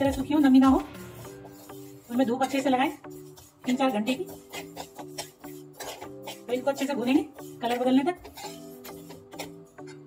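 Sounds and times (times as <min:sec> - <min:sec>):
background music with held notes: 0:00.0 - 0:10.0
spoon scraping seeds in iron pan: 0:00.0 - 0:10.0.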